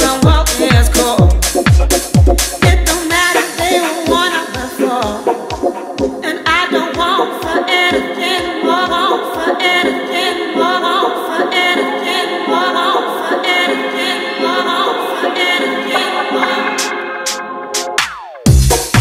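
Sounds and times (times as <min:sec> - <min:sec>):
kick drum beat: 0:00.0 - 0:08.5, 0:18.5 - 0:19.0
dance music with sung vocals: 0:00.0 - 0:17.8.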